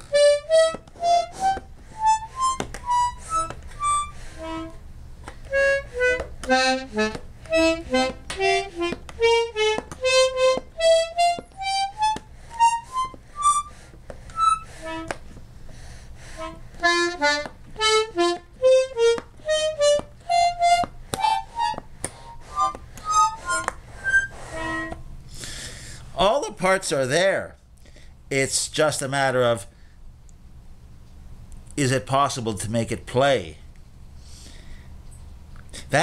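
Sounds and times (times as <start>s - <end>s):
button accordion single notes: 0.0s - 15.4s, 16.3s - 25.0s.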